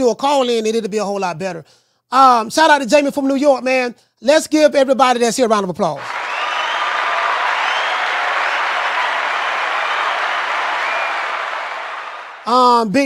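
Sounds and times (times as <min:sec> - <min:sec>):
crowd clapping: 0:06.0 - 0:12.8.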